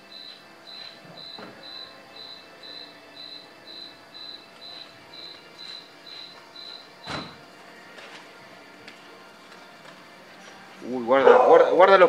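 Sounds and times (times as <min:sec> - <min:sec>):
cricket chirping: 0:00.0 - 0:07.4.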